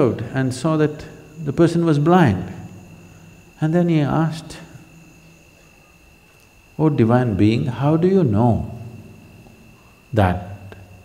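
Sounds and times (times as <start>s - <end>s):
crickets trilling: 0.0s - 11.0s
man speaking: 10.1s - 10.6s.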